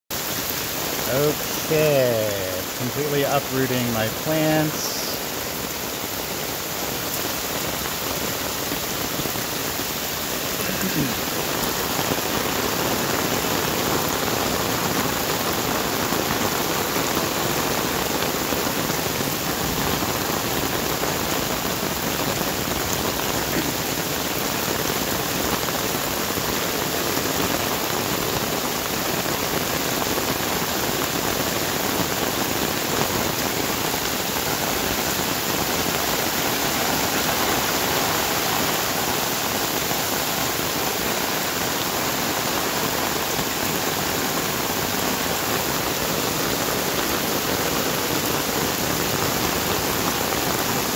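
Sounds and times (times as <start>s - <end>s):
floodwater running: 0.1s - 26.6s, 29.6s - 50.9s
heavy rain on foliage: 0.1s - 50.9s.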